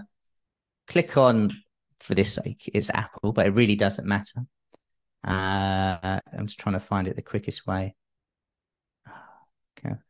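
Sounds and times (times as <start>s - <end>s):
man speaking: 5.3s - 8.0s.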